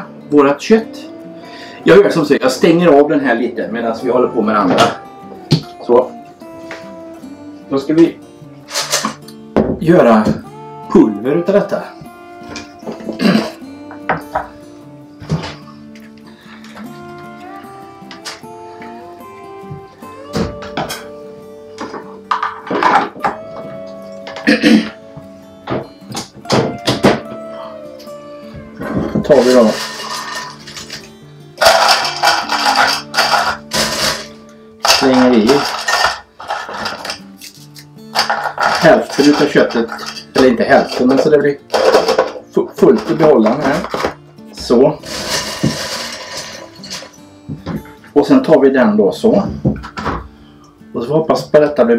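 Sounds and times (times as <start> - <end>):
background music with sustained notes: 0.0 - 51.9.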